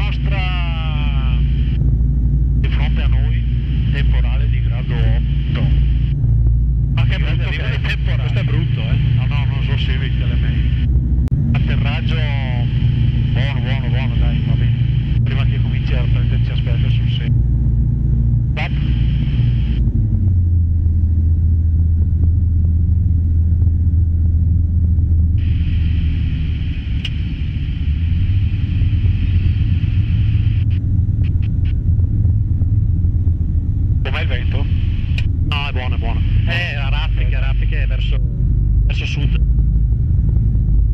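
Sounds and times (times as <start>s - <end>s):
light aircraft engine and propeller: 0.0s - 40.9s.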